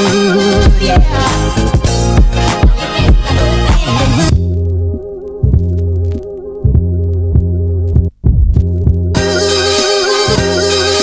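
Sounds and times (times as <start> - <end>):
muffled dance music: 0.6 - 4.5.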